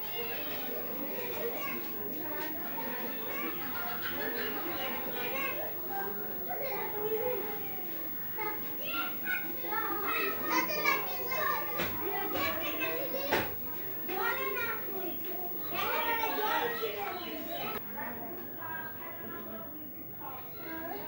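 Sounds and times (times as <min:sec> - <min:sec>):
high-pitched voices chattering: 0:00.0 - 0:21.0.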